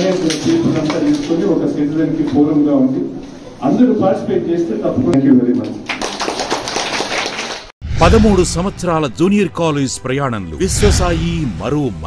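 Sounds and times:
group applause: 0.0s - 1.5s, 5.8s - 7.8s.

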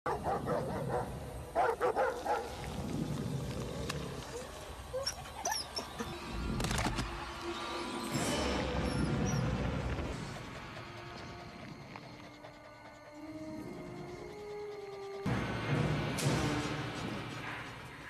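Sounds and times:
dog barking: 0.1s - 2.5s
background music: 0.1s - 18.0s.

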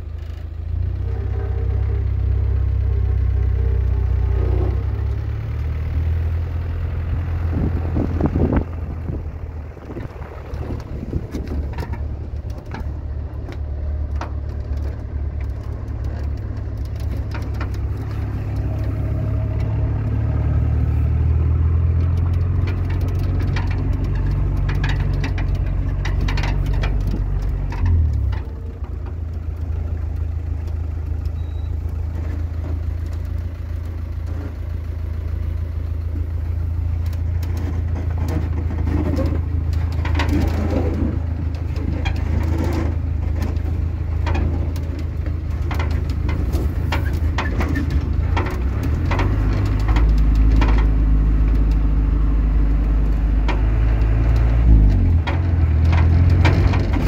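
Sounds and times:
car engine running: 0.0s - 57.0s
short knocks and rattles: 7.6s - 20.1s, 22.0s - 29.7s, 36.1s - 51.8s, 52.9s - 57.0s.

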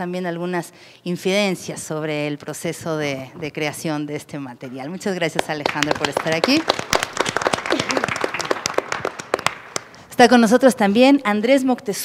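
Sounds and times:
small group clapping: 5.2s - 10.0s.

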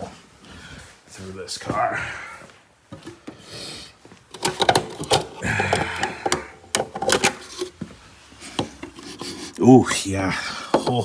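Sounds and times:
plastic clicks and knocks: 4.3s - 7.4s.

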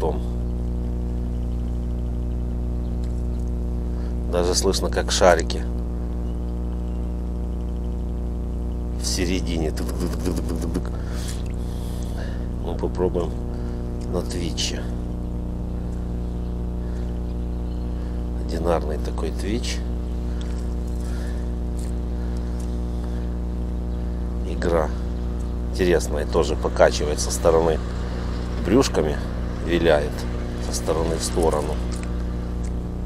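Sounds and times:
steady low hum: 0.0s - 33.0s.

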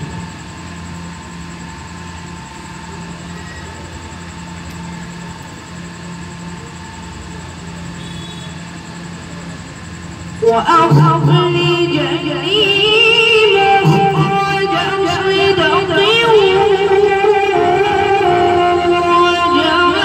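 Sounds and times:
sound system hum: 0.0s - 20.0s.

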